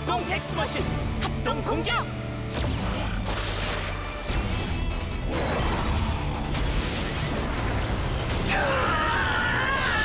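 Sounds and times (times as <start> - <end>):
action music: 0.0 - 10.0.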